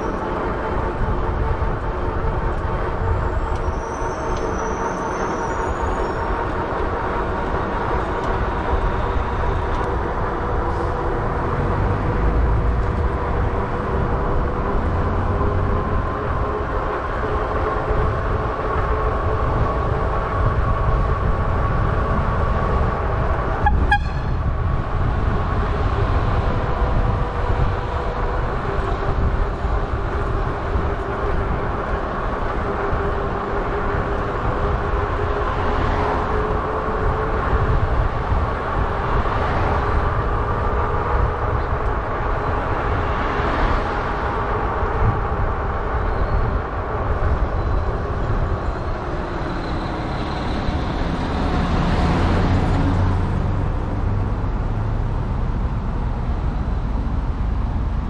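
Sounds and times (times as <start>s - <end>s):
wind rumble on microphone: 0.0s - 58.0s.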